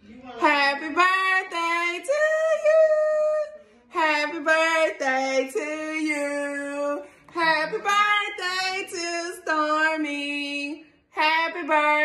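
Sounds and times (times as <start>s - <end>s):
woman singing unaccompanied: 0.3s - 12.0s.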